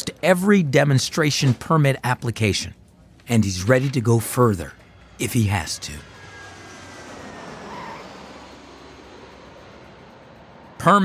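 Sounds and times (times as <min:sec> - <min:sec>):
jet airliner engine rush: 0:04.4 - 0:11.0.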